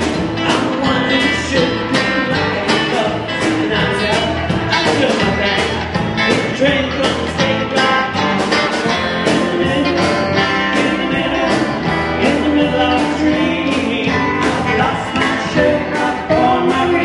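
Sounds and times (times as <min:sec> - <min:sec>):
live rock band playing: 0:00.0 - 0:17.0
man singing: 0:00.0 - 0:17.0.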